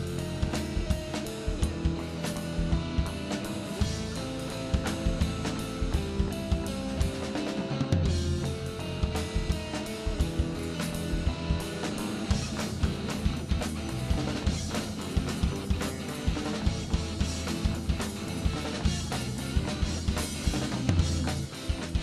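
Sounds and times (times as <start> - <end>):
driving drum beat: 0.0 - 22.0
live rock band instrumental: 0.0 - 22.0.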